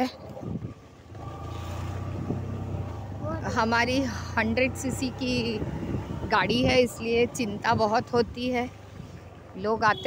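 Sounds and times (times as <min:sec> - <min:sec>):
motorcycle engine droning: 0:01.1 - 0:10.0.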